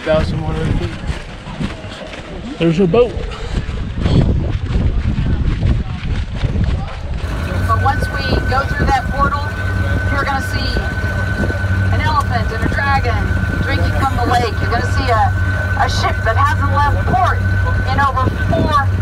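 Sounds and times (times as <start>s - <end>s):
boat engine running: 0.0s - 19.0s
passengers chattering: 0.0s - 19.0s
wind rumble on microphone: 0.0s - 19.0s
high whine: 7.1s - 19.0s.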